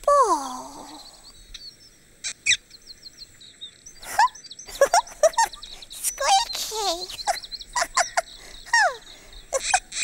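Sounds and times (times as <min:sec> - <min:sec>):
birds chirping and singing: 0:00.5 - 0:10.0.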